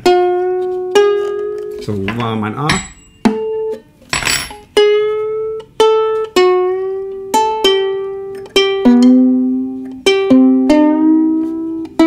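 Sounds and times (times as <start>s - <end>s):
ukulele string plucked: 0.0s - 3.8s, 4.8s - 12.0s.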